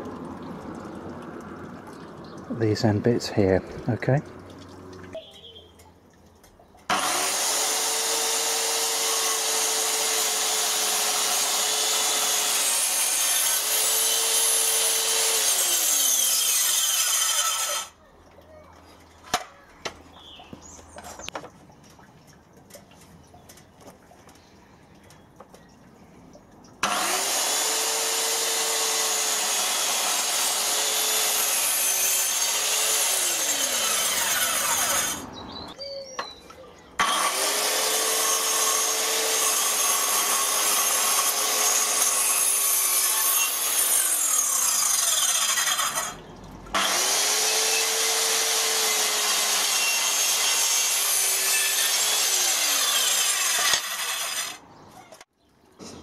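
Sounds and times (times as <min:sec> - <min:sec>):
circular saw cutting boards: 0:06.9 - 0:18.0, 0:26.8 - 0:35.3, 0:37.0 - 0:54.6.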